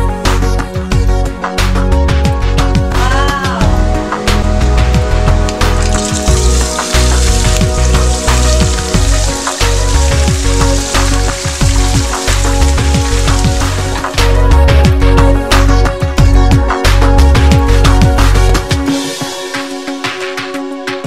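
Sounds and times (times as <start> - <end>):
music with steady bass beat: 0.0 - 21.0
food sizzling in a pan: 6.0 - 14.0.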